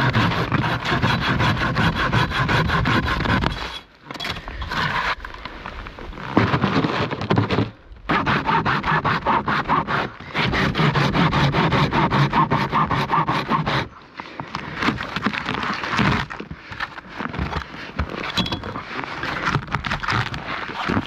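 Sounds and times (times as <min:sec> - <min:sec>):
hand saw cutting a log: 0:00.0 - 0:05.5, 0:06.1 - 0:14.0, 0:14.6 - 0:21.0.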